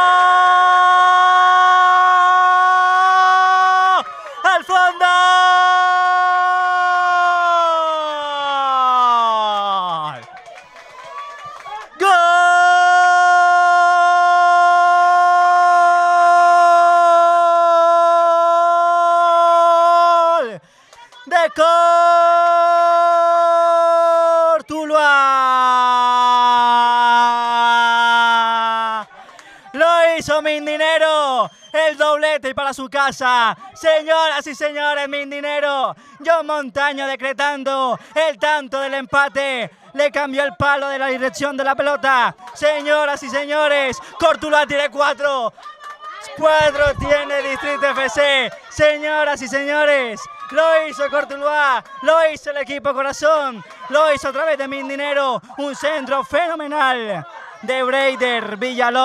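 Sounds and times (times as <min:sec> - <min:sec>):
man shouting goal: 0:00.0 - 0:10.2, 0:12.0 - 0:20.6, 0:21.2 - 0:29.0, 0:46.3 - 0:59.0.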